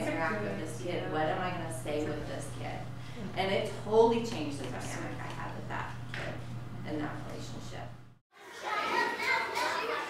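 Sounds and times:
hubbub of overlapping voices: 8.4s - 10.0s.

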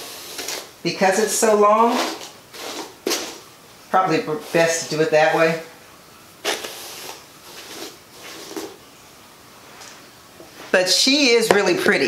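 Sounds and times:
hairbrush swishing through wig: 1.8s - 3.4s.

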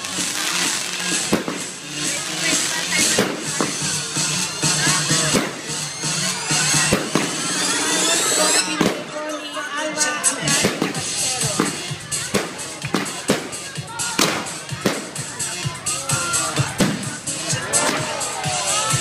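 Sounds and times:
firework whistles: 0.0s - 9.1s
fireworks bursting with bangs: 0.0s - 9.4s, 10.2s - 19.0s
music: 0.0s - 19.0s
voices: 0.0s - 19.0s.

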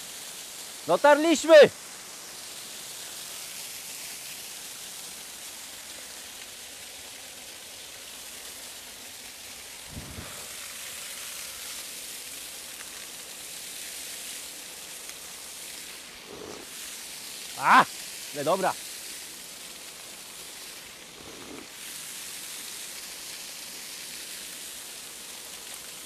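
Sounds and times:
waterfall rushing: 0.8s - 1.8s, 9.7s - 12.0s, 16.0s - 18.8s.

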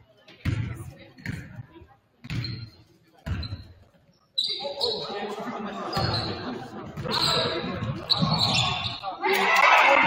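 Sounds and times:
voices and court noise: 0.0s - 10.0s.

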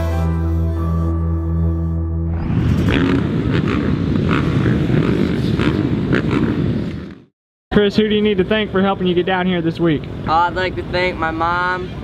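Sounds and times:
motocross bike engines revving: 2.7s - 7.2s.

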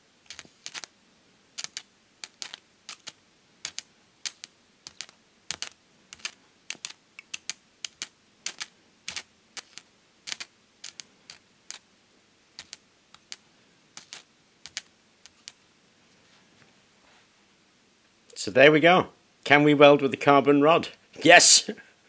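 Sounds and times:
sharp clicks and snaps of arcs: 0.2s - 0.9s, 1.6s - 11.9s, 14.0s - 15.6s.

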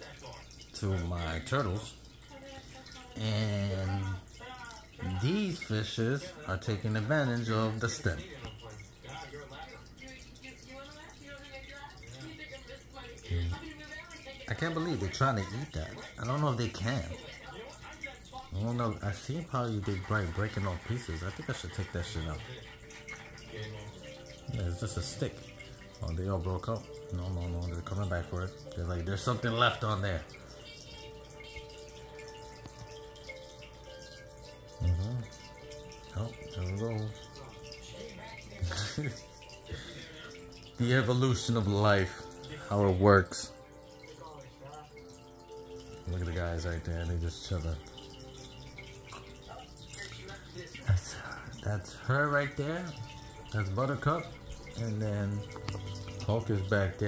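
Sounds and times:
filter water pouring and splashing: 0.0s - 57.0s.

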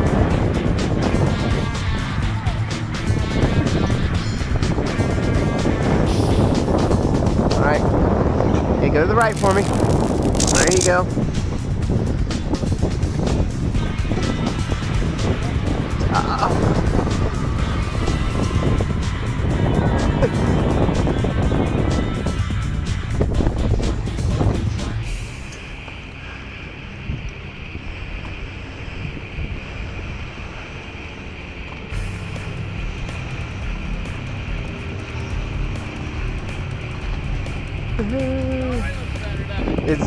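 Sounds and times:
music: 0.0s - 8.4s, 9.2s - 26.1s, 31.9s - 40.0s
wind buffeting microphone: 0.0s - 25.3s, 26.7s - 40.0s.

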